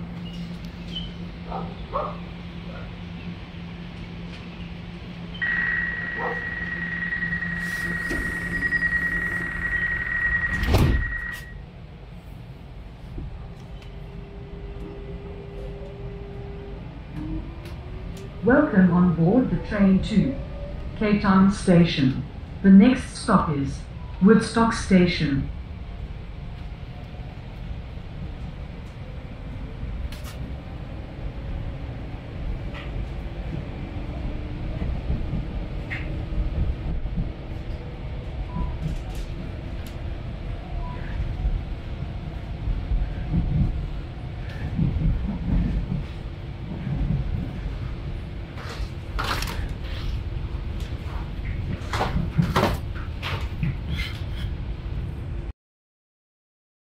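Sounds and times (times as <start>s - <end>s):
train wheels rumbling on track: 0.0s - 55.5s.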